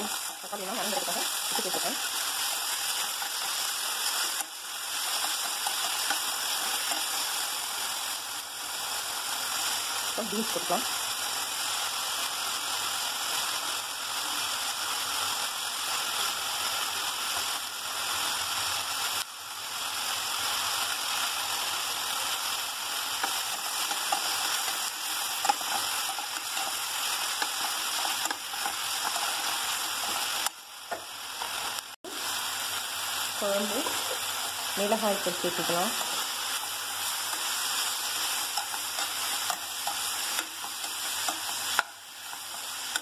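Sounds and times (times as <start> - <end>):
vegetables sizzling in hot oil: 0.0 - 43.0.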